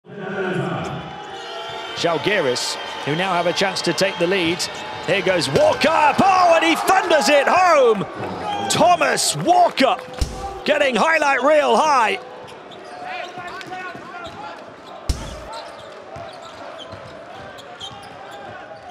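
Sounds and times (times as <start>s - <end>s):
arena crowd murmur: 0.1s - 18.9s
basketball dribbling on hardwood: 15.1s - 15.5s
sharp loud bang: 15.1s - 15.5s.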